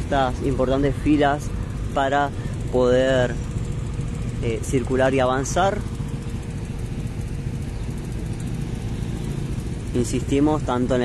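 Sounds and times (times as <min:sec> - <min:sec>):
traffic engines rumbling: 0:00.0 - 0:11.0.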